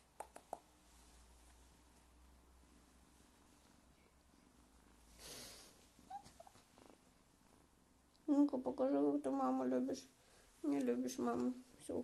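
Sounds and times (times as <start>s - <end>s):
cat purring: 2.6s - 10.0s.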